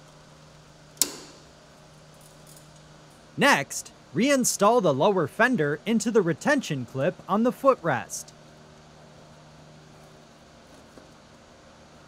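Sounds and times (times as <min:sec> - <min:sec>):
strap snapping onto tab: 0:01.0 - 0:01.4.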